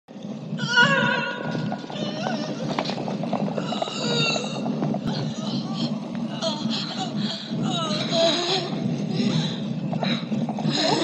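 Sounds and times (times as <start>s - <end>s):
low rumble: 0.1s - 11.0s.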